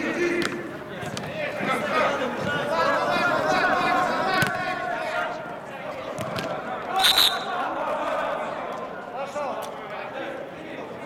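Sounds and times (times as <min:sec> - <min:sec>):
players calling out: 0:00.0 - 0:10.2.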